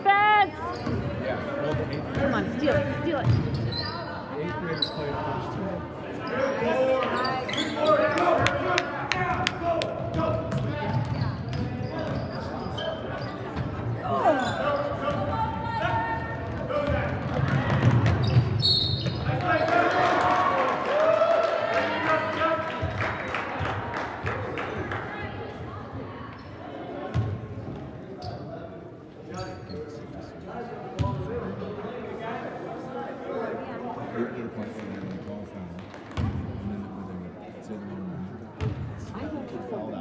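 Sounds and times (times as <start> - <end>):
spectators' voices and shouts: 0.0 - 18.2.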